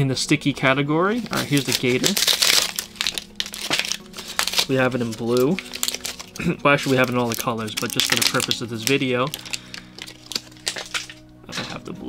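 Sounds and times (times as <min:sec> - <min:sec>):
plastic packaging crinkling: 0:01.2 - 0:11.4.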